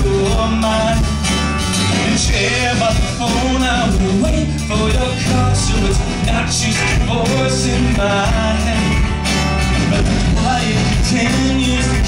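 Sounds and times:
acoustic guitar: 0.0s - 12.0s
drums: 0.0s - 12.0s
electric guitar: 0.0s - 12.0s
keyboard: 0.0s - 12.0s.

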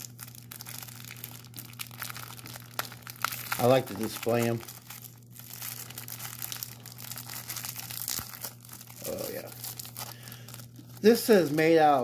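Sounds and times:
low steady hum: 0.0s - 12.0s
plastic bag crinkling: 0.0s - 12.0s.

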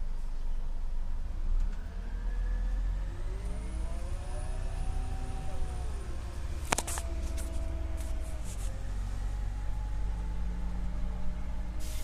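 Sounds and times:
bus engine rumbling: 0.0s - 12.0s
engine whine rising in pitch: 1.4s - 12.0s.

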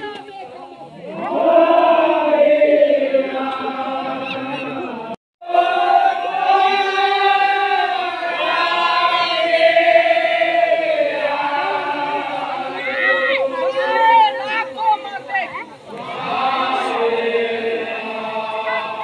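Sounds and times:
group of voices chanting: 0.9s - 19.0s.

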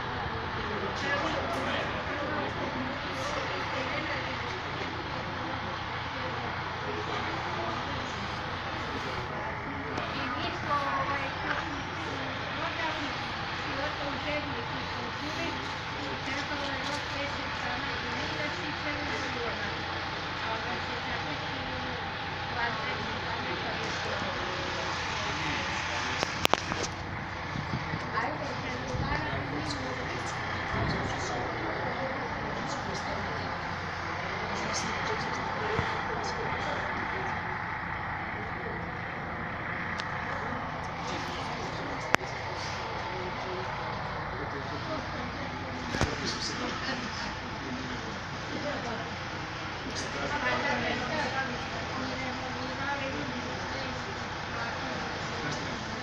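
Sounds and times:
murmuring voices: 0.0s - 56.0s
people talking indistinctly: 0.0s - 56.0s
railway yard noise: 0.0s - 56.0s
train rumbling in motion: 0.0s - 56.0s.

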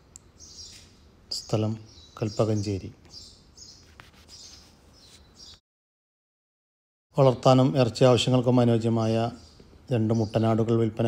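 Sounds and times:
small birds chirping: 0.0s - 5.6s, 7.2s - 11.0s.

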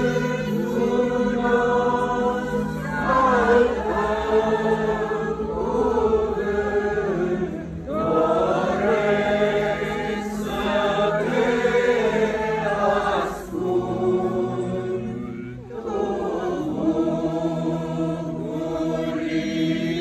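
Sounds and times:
congregation chanting: 0.0s - 20.0s.

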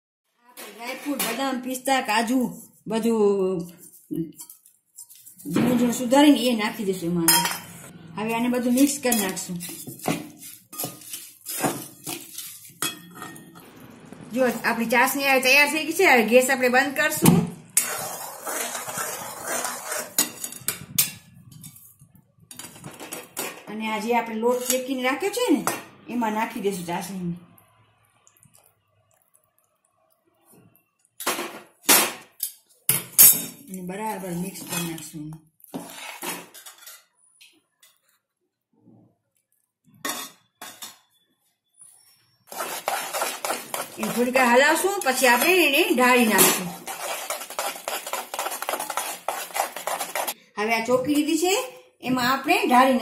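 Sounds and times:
spoon scraping steel pan: 8.5s - 13.8s, 17.7s - 23.4s, 35.7s - 37.1s, 42.0s - 50.4s.

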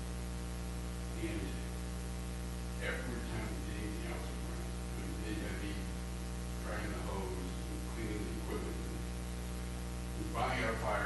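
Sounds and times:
electrical mains hum: 0.0s - 11.0s
person's voice: 1.2s - 1.7s, 2.8s - 6.0s, 6.6s - 9.0s, 10.2s - 11.0s.

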